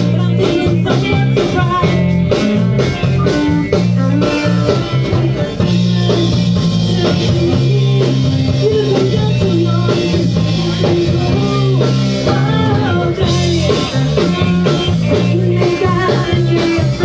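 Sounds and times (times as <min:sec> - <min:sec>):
woman singing: 0:00.0 - 0:03.4, 0:04.6 - 0:17.0
bass guitar: 0:00.0 - 0:17.0
drums: 0:00.0 - 0:17.0
electric guitars: 0:00.0 - 0:17.0.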